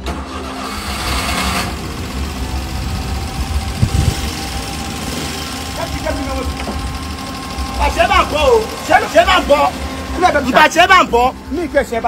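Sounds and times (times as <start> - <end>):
minibus engine idling: 0.0 - 12.0.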